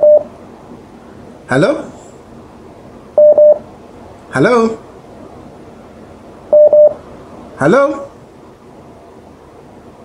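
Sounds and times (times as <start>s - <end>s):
short telephone beeps: 0.0s - 0.2s, 3.2s - 3.6s, 6.5s - 7.0s
phone line tone: 0.0s - 0.3s, 3.2s - 3.6s, 6.5s - 7.0s.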